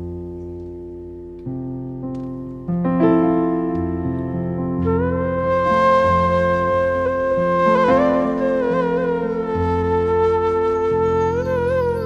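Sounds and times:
sustained keyboard chords: 0.0s - 12.0s
bamboo flute long held note: 4.8s - 12.0s.

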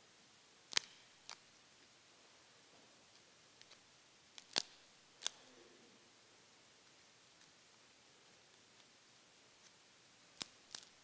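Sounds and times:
sharp clicks: 0.7s - 1.4s, 3.6s - 5.5s
small ticks: 0.7s - 1.4s, 10.4s - 11.0s.

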